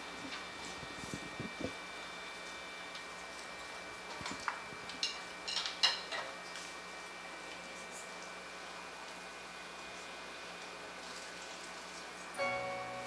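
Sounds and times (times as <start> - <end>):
faint steady high tone: 12.4 - 13.0.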